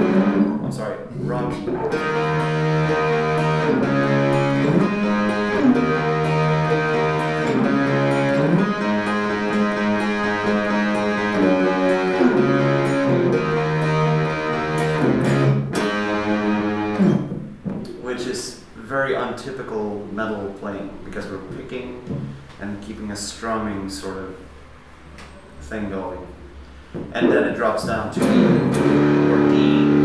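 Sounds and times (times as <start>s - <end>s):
electric guitar strumming chords: 0.0s - 17.5s, 28.1s - 30.0s.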